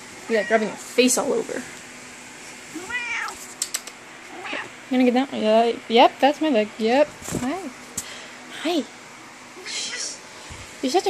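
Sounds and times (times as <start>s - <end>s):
cat meowing: 2.7s - 3.4s, 4.3s - 4.7s.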